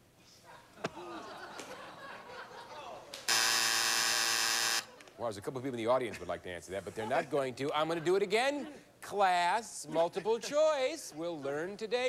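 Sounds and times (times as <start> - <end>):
game show buzzer: 3.3 - 4.9.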